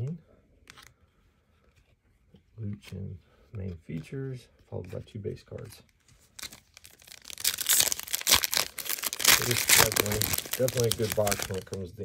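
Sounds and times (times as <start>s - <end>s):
foil wrapper crinkling and tearing: 6.3s - 11.8s.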